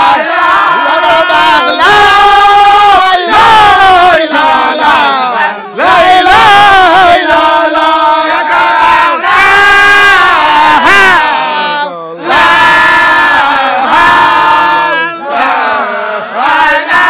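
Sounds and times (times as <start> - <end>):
crowd of men shouting: 0.0 - 17.0
man shouting into microphone: 10.7 - 11.8.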